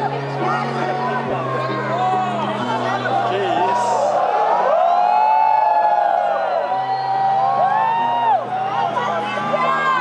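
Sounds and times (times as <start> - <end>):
audience screaming and whooping: 3.6 - 10.0.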